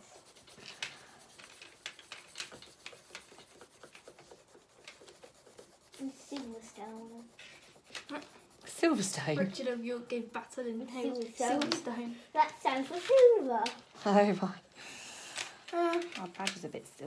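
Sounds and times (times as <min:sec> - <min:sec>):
pencil scratching on paper: 0:00.0 - 0:13.2.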